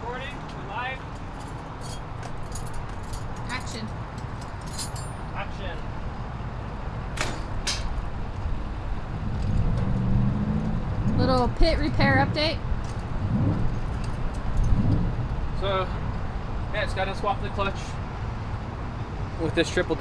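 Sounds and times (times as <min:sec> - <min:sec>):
low vehicle rumble: 0:00.0 - 0:20.0
metal hand tools clinking: 0:01.4 - 0:05.3.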